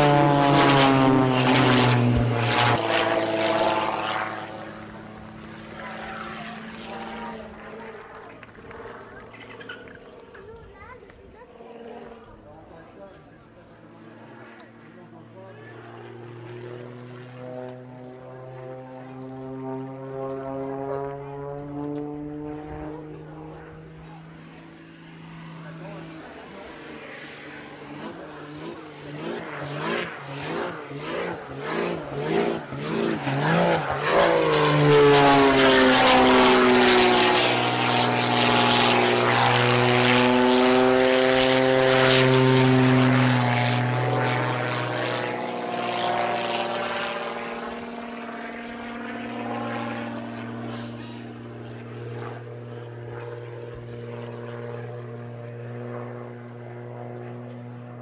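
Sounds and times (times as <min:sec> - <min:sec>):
propeller plane engine droning: 0:00.0 - 0:58.0.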